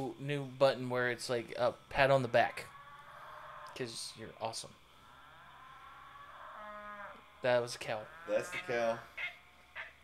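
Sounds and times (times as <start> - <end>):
cow mooing: 5.1 - 9.4.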